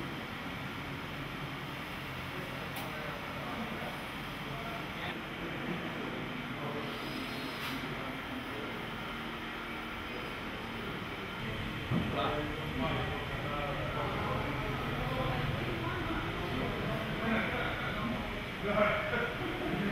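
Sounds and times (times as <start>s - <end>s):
hall rumble and hiss: 0.0s - 19.9s.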